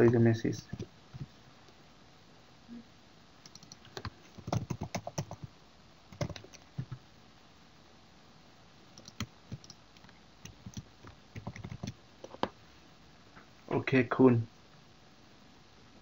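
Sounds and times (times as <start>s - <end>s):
typing on computer keyboard: 3.4s - 5.5s, 6.1s - 7.0s, 9.0s - 12.0s.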